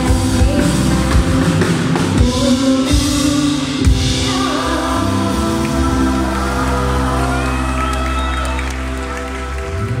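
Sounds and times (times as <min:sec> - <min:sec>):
crowd cheering: 0:05.7 - 0:10.0.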